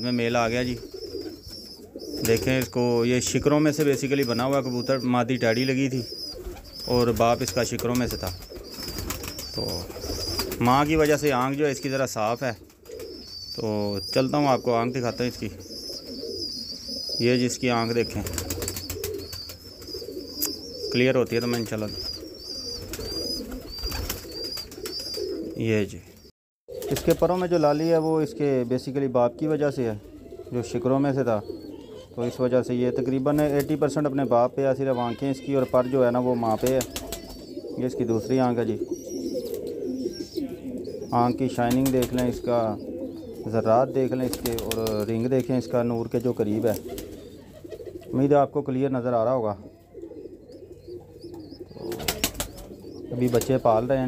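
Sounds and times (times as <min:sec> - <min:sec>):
pigeons cooing: 0:00.0 - 0:54.0
small birds chirping: 0:00.0 - 0:54.0.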